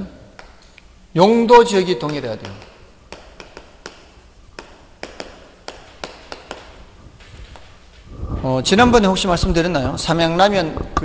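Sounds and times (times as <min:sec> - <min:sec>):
chalk tapping on blackboard: 0:02.0 - 0:06.8.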